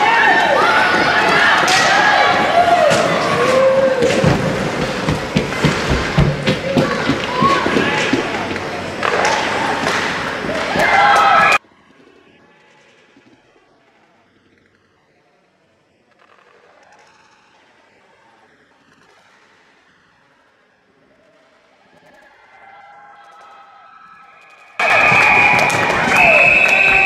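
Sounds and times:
hockey sticks and puck clacking: 0.0s - 11.6s, 23.3s - 27.0s.

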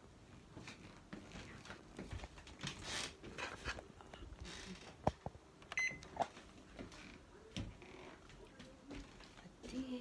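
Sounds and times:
oven control panel beep: 5.8s - 6.1s.

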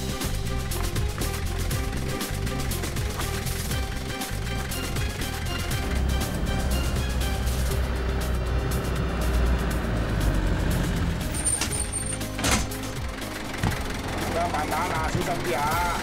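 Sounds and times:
background music: 0.0s - 16.0s
minibus engine rumble: 0.0s - 16.0s
road traffic: 0.0s - 16.0s.

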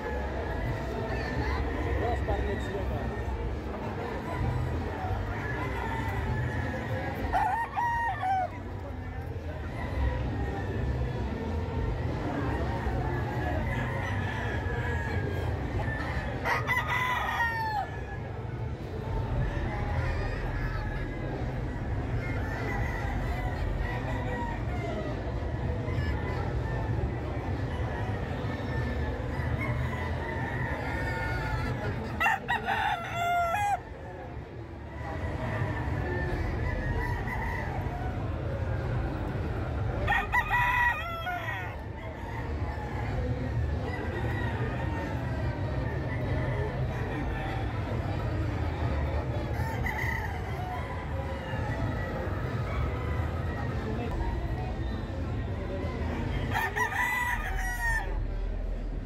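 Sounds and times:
rooster crowing: 56.5s - 58.3s.

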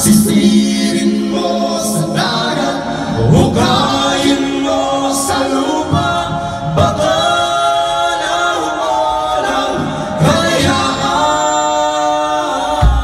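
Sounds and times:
drums: 0.0s - 13.0s.

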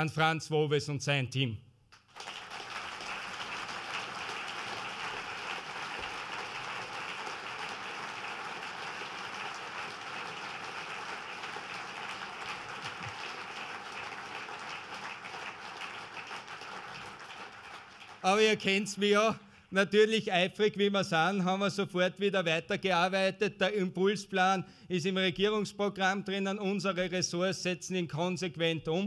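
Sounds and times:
audience applause: 2.0s - 18.7s.

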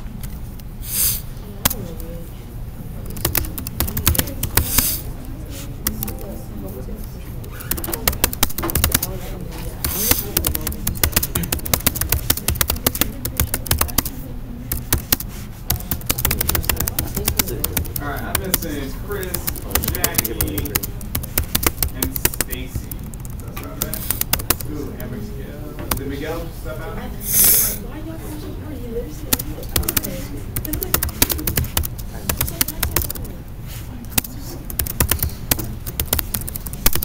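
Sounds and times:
voices murmuring: 1.4s - 36.8s
keyboard typing clicks: 3.0s - 5.0s, 5.8s - 6.3s, 7.4s - 9.2s, 9.8s - 24.7s, 29.3s - 33.3s, 34.1s - 37.0s.

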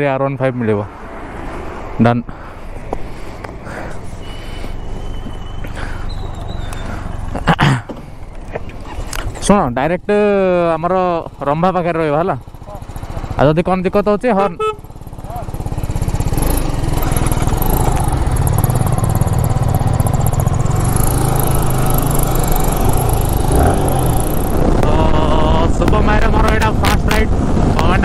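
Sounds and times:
motorcycle engine accelerating: 10.1s - 28.0s
wind noise: 22.4s - 28.0s.

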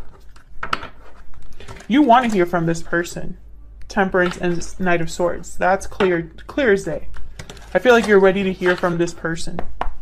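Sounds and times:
cards clicking and tapping: 7.1s - 10.0s.

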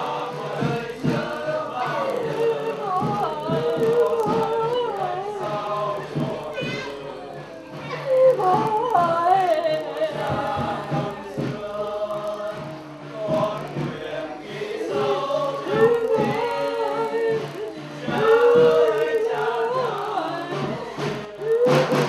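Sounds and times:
group of voices singing: 0.0s - 22.0s
low musical backing: 0.0s - 22.0s.

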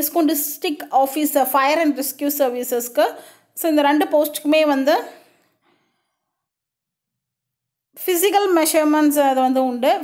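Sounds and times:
breathy exhale: 5.2s - 6.4s.

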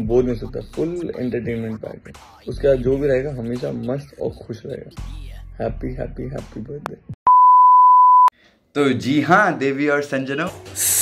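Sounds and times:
electronic bleep tone: 7.3s - 8.3s.

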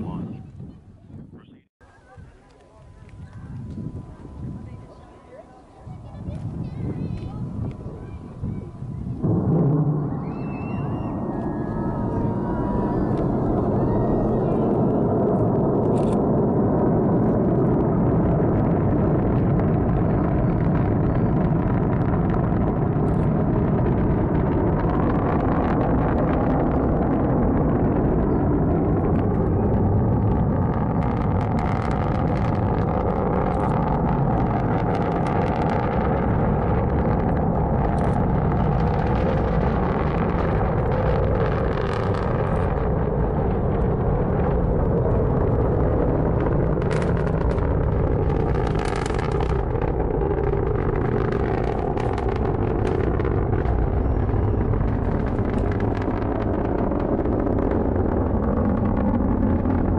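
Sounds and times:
distant rocket engine roar: 2.6s - 59.9s
rocket engine crackling: 2.8s - 59.9s.

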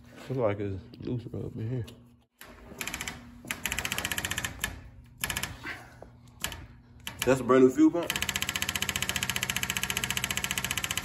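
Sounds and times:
electric fuel pump ticking: 8.1s - 11.0s.

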